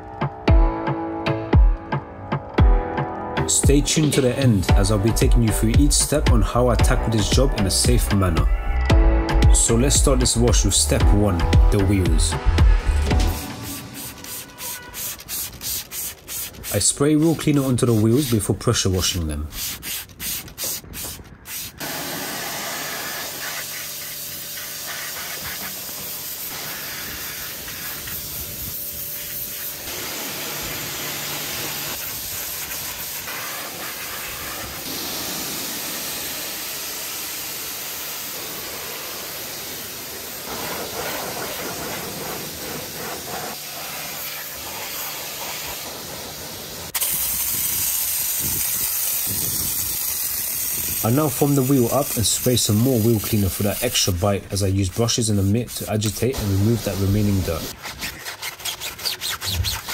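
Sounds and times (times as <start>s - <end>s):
pressure-washer jet hissing: 13.2s - 18.8s, 19.5s - 57.7s
snow foam lance foaming: 13.3s - 58.2s.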